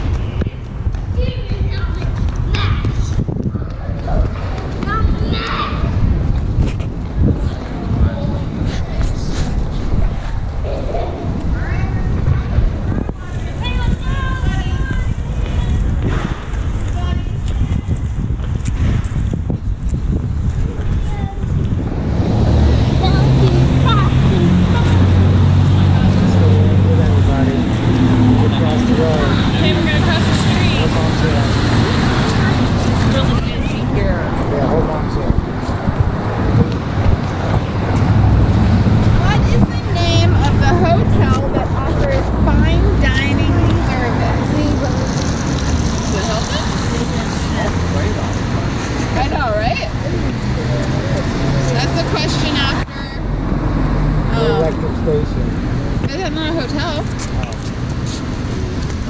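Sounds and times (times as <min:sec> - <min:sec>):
street traffic rumble: 0:00.0 - 0:59.0
cars driving past: 0:21.4 - 0:59.0.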